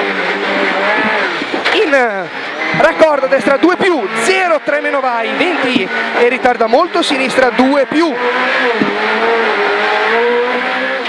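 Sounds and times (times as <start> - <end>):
car engine revving inside cabin: 0.0 - 11.0.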